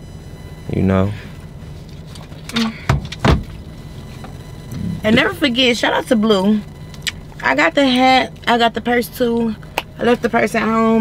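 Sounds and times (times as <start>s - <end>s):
low car cabin noise: 0.0s - 11.0s
knocks and rustles near microphone: 2.9s - 5.0s.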